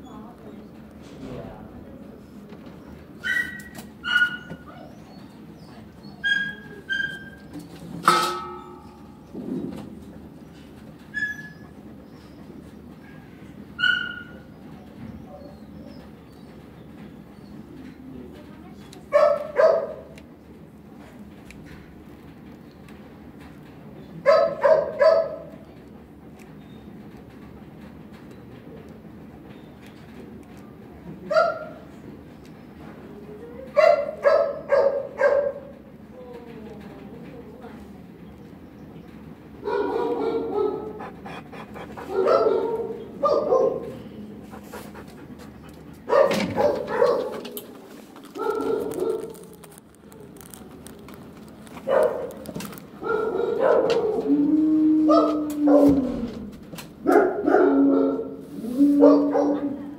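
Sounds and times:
high-pitched dog yips: 3.2 - 5.1, 13.8 - 14.4
dog barking: 19.1 - 20.1, 24.2 - 25.5, 31.3 - 31.8, 33.8 - 35.7, 39.6 - 41.1, 42.0 - 44.0, 46.1 - 47.6, 48.4 - 49.4, 51.9 - 52.4, 53.0 - 54.2, 55.1 - 56.0, 57.0 - 58.4, 59.0 - 59.8.

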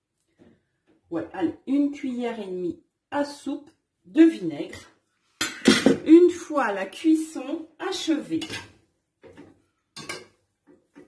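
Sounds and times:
spoon scraping and clinking pan: 8.4 - 8.8, 10.0 - 10.4.

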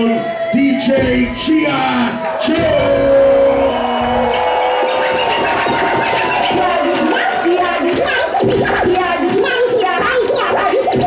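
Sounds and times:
record scratching on turntable: 4.2 - 11.0.

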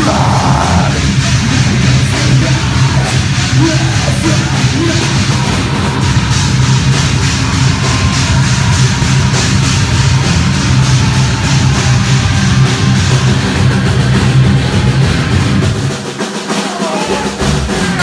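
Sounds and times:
bass drum: 0.0 - 18.0
heavy rock band playing: 0.0 - 18.0.

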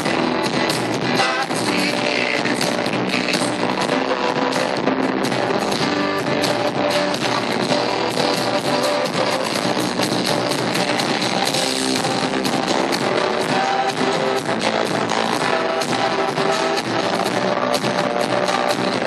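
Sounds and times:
live pop rock band with piano: 0.0 - 19.0.

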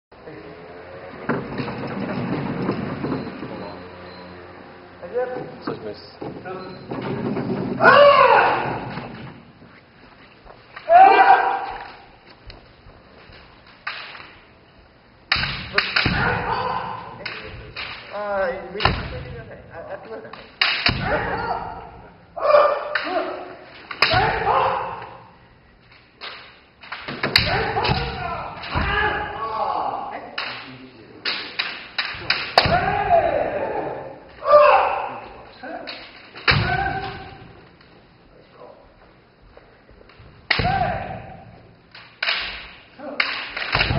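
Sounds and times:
person shouting: 7.8 - 8.9, 10.8 - 11.9, 16.0 - 17.2, 21.0 - 25.2, 27.4 - 30.3, 32.6 - 35.2, 36.6 - 37.4, 40.6 - 41.4
bamboo sword cracking on armour: 13.8 - 14.3, 15.3 - 16.6, 17.2 - 18.2, 20.3 - 21.4, 22.8 - 25.1, 30.4 - 33.0, 40.5 - 41.2, 41.9 - 43.9.

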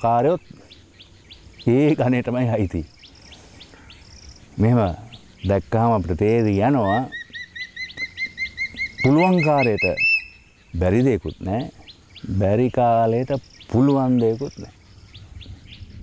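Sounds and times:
bird calling upswept notes: 0.0 - 16.0
faint high bird calls: 0.0 - 16.0.

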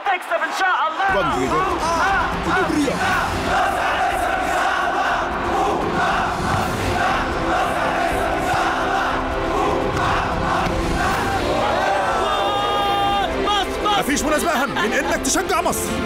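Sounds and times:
crowd chanting: 0.0 - 14.2.

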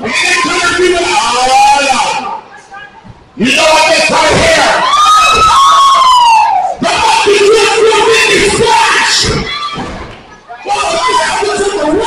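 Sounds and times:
crowd shouting and cheering: 0.0 - 12.0
long drawn-out yell: 3.5 - 9.8.

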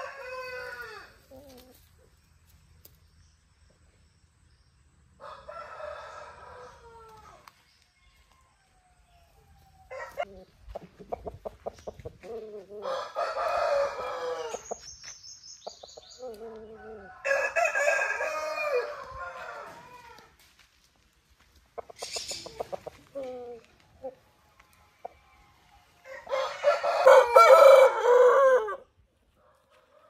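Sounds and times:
rooster crowing: 0.0 - 1.2, 5.2 - 7.5, 9.7 - 10.3, 12.8 - 14.7, 16.5 - 20.3, 25.3 - 28.8
chicken clucking: 9.9 - 14.8, 21.7 - 27.5.

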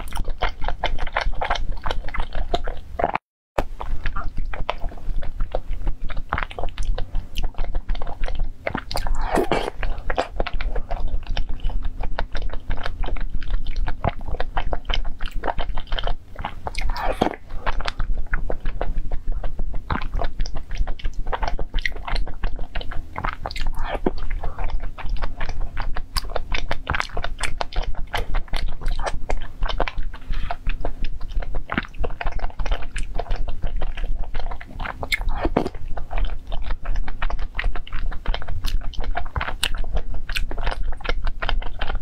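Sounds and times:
person chewing: 0.0 - 42.0
wet mouth clicks: 0.0 - 42.0.

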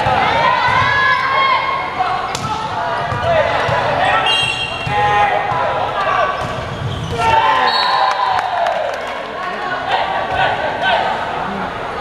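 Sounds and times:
players shouting: 0.0 - 11.6
sneakers squeaking on court: 6.2 - 7.3.

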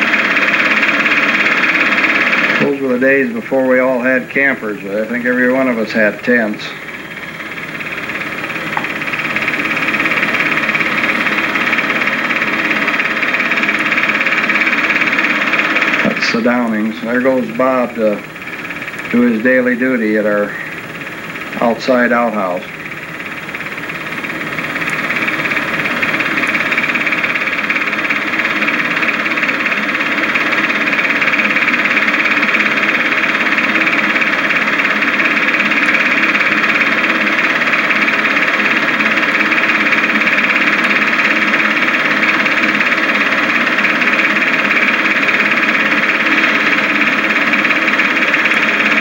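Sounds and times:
faint hum: 0.0 - 49.0.

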